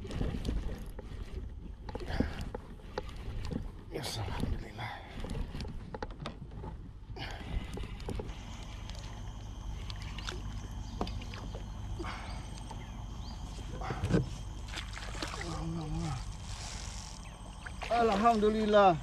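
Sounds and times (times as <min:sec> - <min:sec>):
low rumble of wind and water: 0:00.0 - 0:19.0
fishing reel being cranked: 0:16.3 - 0:17.3.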